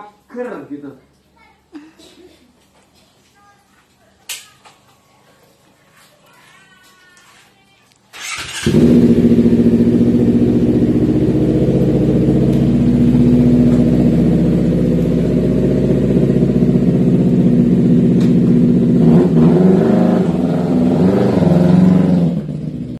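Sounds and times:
motorcycle engine revving: 0:08.2 - 0:22.9.

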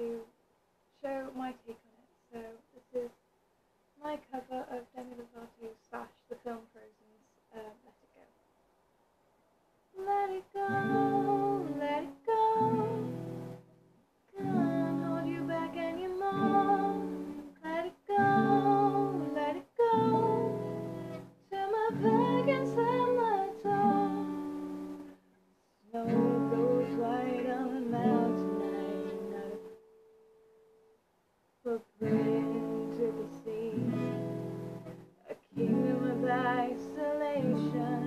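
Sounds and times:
woman singing: 0:10.0 - 0:13.2, 0:14.4 - 0:25.0, 0:25.9 - 0:29.8, 0:31.7 - 0:34.3, 0:35.2 - 0:38.0
acoustic guitar: 0:10.0 - 0:31.0, 0:31.7 - 0:38.0.

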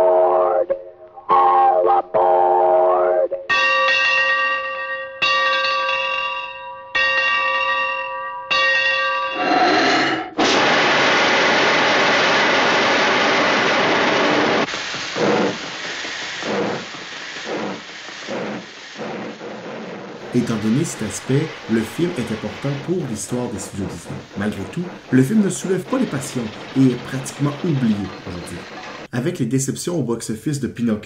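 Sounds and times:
large bell ringing: 0:03.5 - 0:09.5, 0:20.4 - 0:29.1
steam hissing with puffs: 0:10.4 - 0:29.1.

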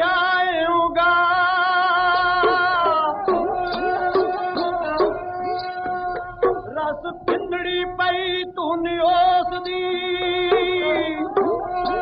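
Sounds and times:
bowed sarangi sliding between pitches: 0:01.9 - 0:07.9, 0:09.6 - 0:12.0.

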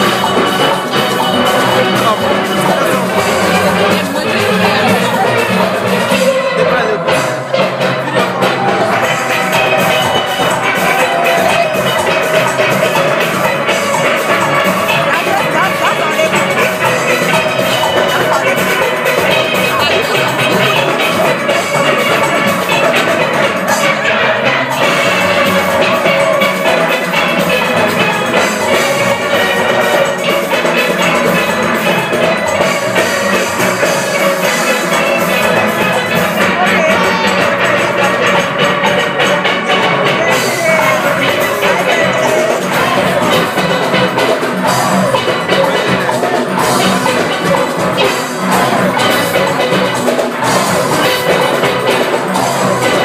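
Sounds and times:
drum and percussion beat: 0:00.0 - 0:53.0
steel pan band playing: 0:00.0 - 0:53.0.

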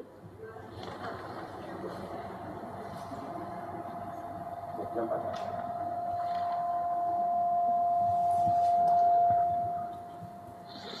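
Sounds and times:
microphone feedback ring: 0:05.5 - 0:11.0.

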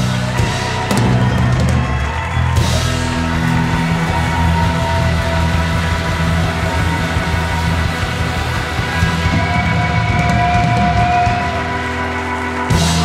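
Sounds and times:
rock music with heavy low notes: 0:00.0 - 0:13.0.

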